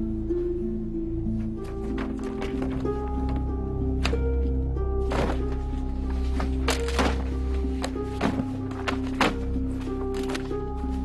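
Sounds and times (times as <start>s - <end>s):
background music with held notes: 0.0s - 11.0s
paper folders dropped into box: 5.1s - 5.6s, 6.3s - 9.5s.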